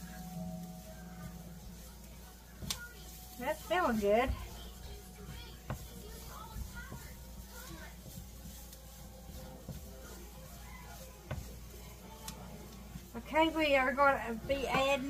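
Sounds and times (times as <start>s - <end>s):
faint background voices: 0.0s - 15.0s
faint music: 0.0s - 15.0s
spatula stirring in frying pan: 0.0s - 15.0s.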